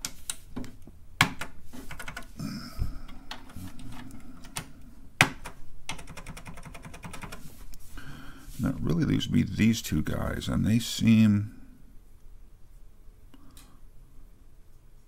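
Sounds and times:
keycaps clicking and tapping: 0.0s - 2.3s, 3.1s - 7.5s.

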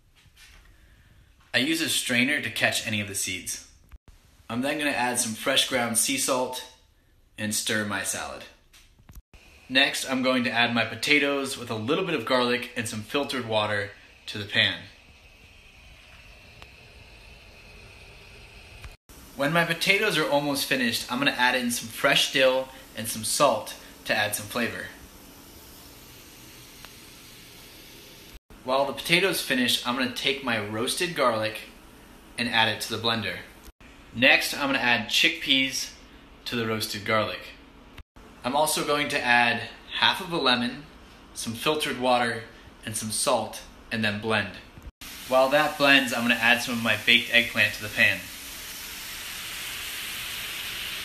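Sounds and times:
potatoes sizzling in a pan: 16.4s - 28.4s, 45.0s - 51.0s.

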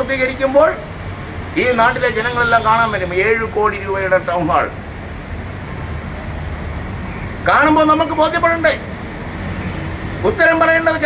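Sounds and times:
distant street traffic rumble: 0.0s - 11.0s.

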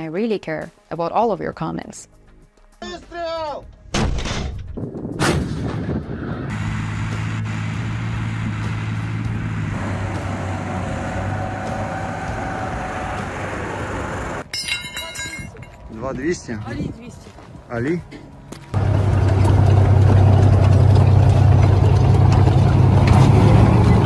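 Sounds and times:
armoured vehicle engines rumbling: 5.9s - 16.5s, 18.0s - 24.0s.

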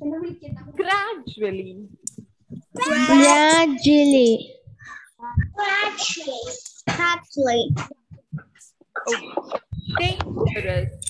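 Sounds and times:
voices repeating a word: 2.8s - 4.6s.

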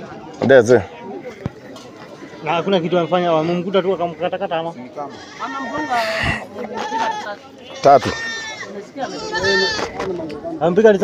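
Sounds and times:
goats bleating: 5.0s - 9.9s.

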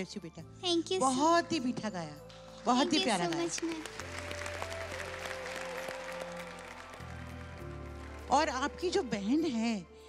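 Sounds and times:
audience applause: 2.9s - 9.0s.

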